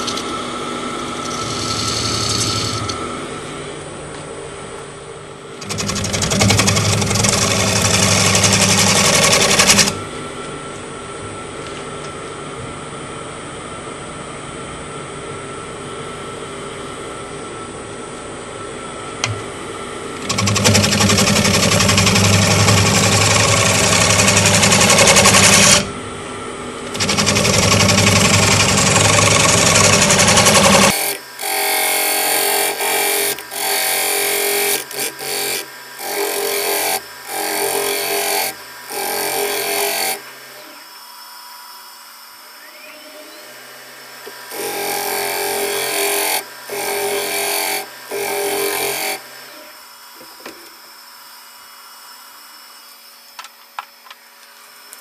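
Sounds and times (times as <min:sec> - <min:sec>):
wood lathe humming: 0:00.0 - 0:03.4, 0:05.6 - 0:10.0, 0:20.2 - 0:25.9, 0:26.9 - 0:41.0, 0:44.2 - 0:49.9
gouge cutting wood: 0:20.2 - 0:25.8, 0:27.0 - 0:40.3, 0:44.5 - 0:49.3.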